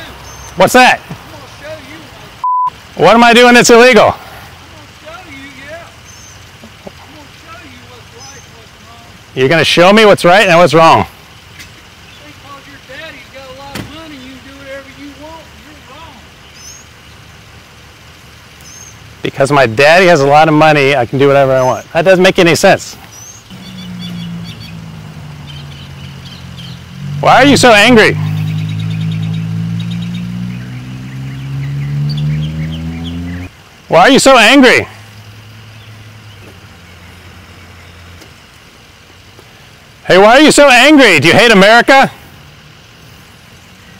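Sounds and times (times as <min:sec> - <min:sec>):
high bird chirp: 0:00.0 - 0:00.6, 0:05.4 - 0:06.6, 0:07.4 - 0:08.8, 0:11.4 - 0:12.8, 0:16.0 - 0:17.4, 0:18.6 - 0:19.1, 0:23.0 - 0:33.5
distant vehicle engine rumble: 0:00.0 - 0:43.9.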